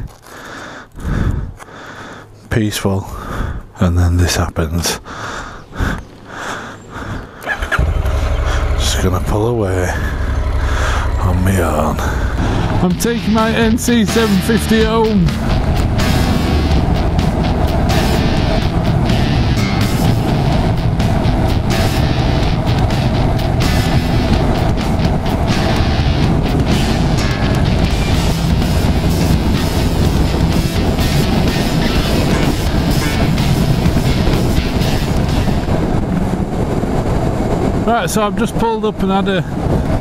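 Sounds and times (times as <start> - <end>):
wind rush: 1.0 - 1.6, 5.2 - 40.0
motorcycle engine riding: 7.5 - 37.8
background music: 7.8 - 35.8.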